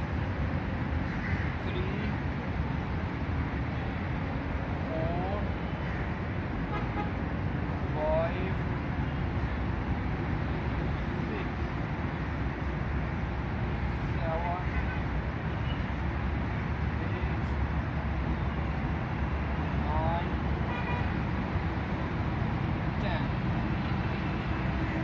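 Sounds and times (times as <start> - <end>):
road traffic rumble: 0.0 - 25.0.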